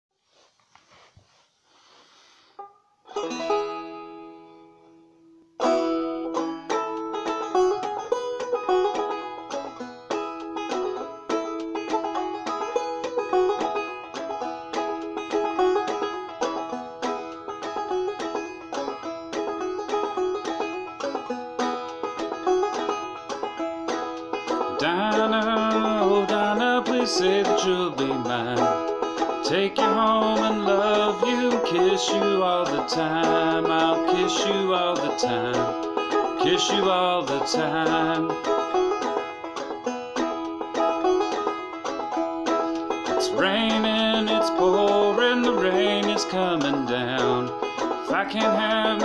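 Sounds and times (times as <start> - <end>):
banjo playing: 1.8 - 49.0.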